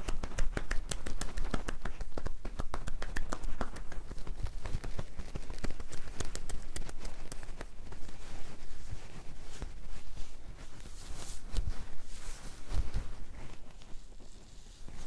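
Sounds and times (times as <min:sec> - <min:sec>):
hands patting a back: 0:00.0 - 0:10.0, 0:10.6 - 0:15.0.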